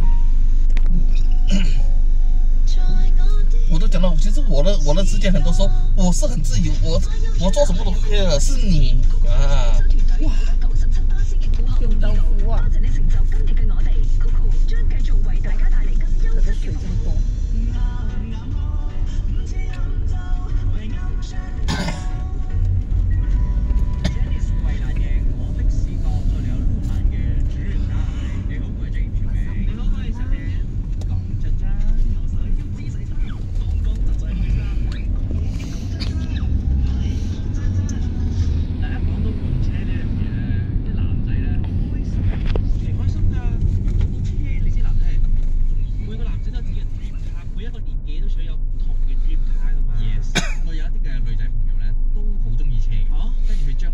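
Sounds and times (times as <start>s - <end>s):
car engine and road noise: 0.0s - 53.9s.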